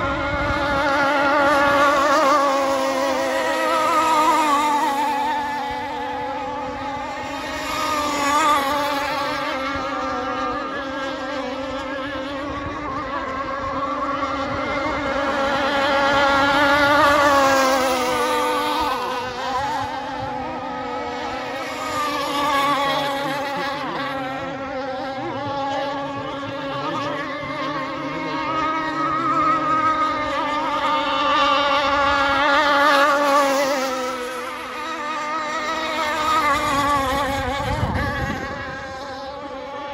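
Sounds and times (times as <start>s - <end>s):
model boat engines high-revving: 0.0s - 39.9s.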